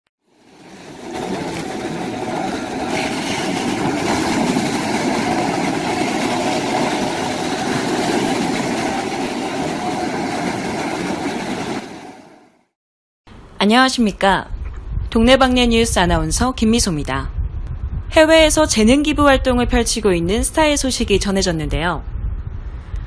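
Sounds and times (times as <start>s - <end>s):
waves breaking on beach: 0.3s - 12.5s.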